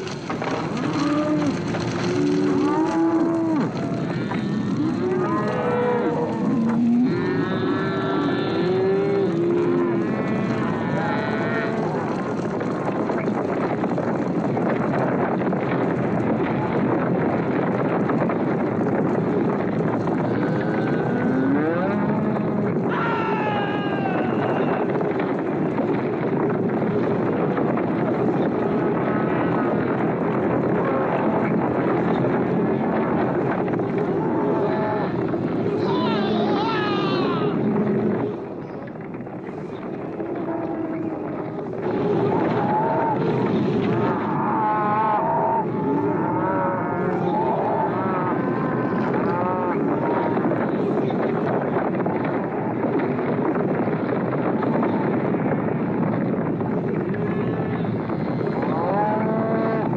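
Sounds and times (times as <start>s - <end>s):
stampeding hooves: 0.0s - 59.9s
cattle bellowing: 0.4s - 12.4s.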